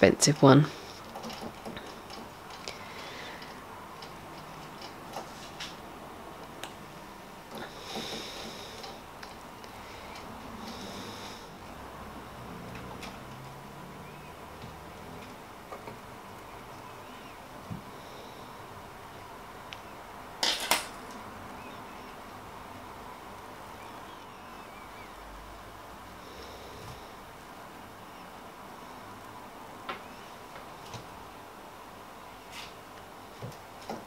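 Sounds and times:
faint steady background tone: 0.0 - 34.0.

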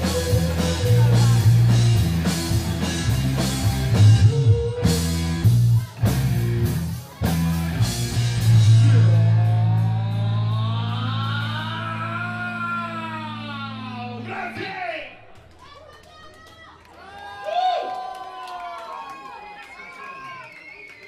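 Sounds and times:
live rock band: 0.0 - 12.4.

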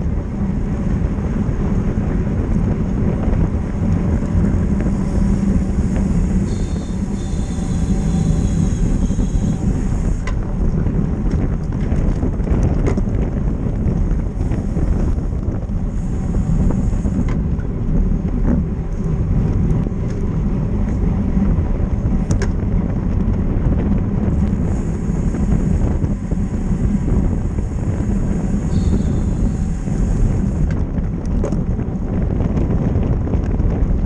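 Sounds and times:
road and tyre noise: 0.0 - 34.0
wind buffeting microphone: 0.0 - 34.0.

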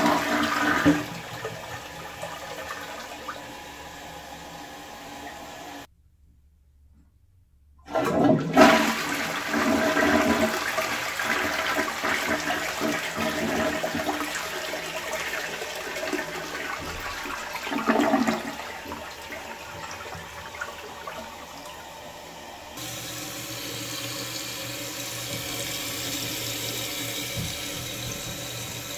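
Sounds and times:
toilet flushing: 0.0 - 5.9, 7.9 - 28.9
toilet refilling hiss: 0.0 - 5.9, 7.9 - 28.9.

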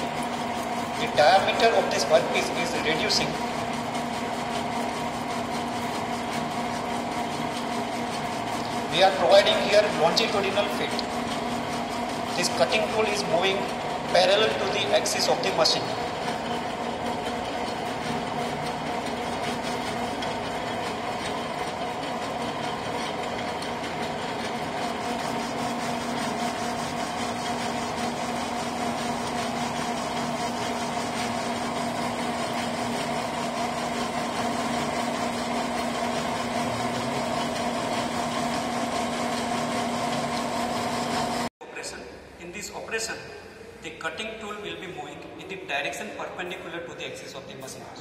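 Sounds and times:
lathe cutting metal hum: 0.0 - 41.5.

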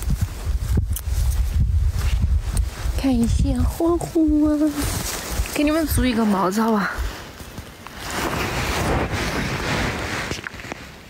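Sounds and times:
grass rustling: 0.0 - 11.0
wind buffeting microphone: 0.0 - 11.0.

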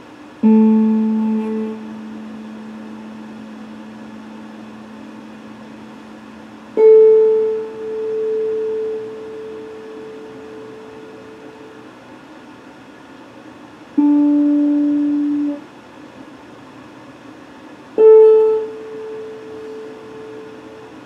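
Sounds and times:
electric guitar picked notes: 0.4 - 11.9, 14.0 - 15.7, 18.0 - 21.0.

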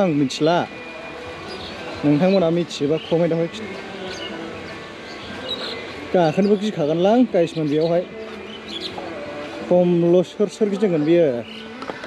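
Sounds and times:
man speaking: 6.1 - 8.1, 9.7 - 11.4.

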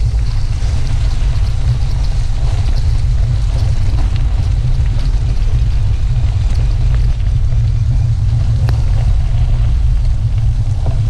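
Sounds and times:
wind and road rumble: 0.0 - 11.0.

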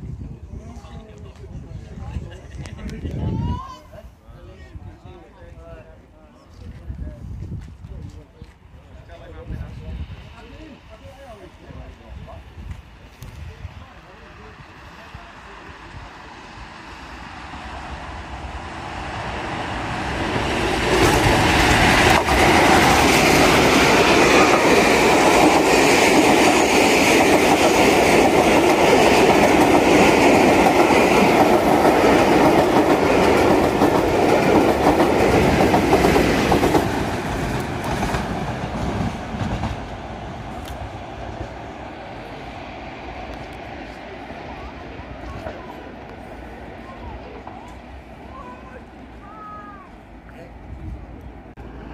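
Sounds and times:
diesel locomotive passing: 4.3 - 51.9.

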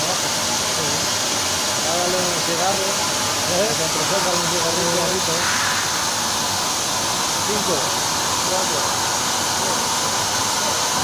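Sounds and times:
plasma torch hissing: 1.9 - 10.8.

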